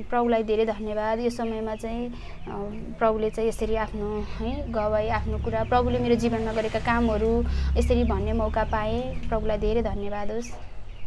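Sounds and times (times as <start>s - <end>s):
woman talking: 0.0s - 10.6s.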